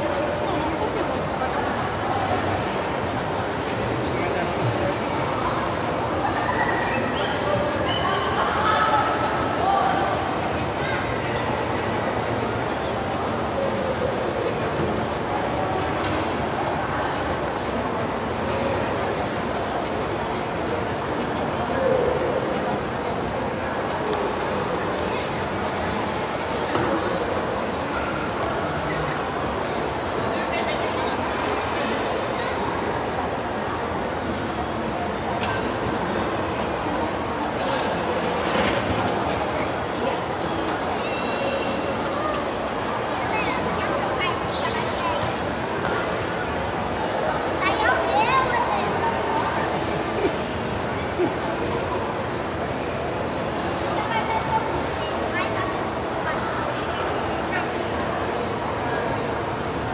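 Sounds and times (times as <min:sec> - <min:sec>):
faint distant voices: 0:00.0 - 0:59.9
reverberant indoor hall din: 0:00.0 - 0:59.9.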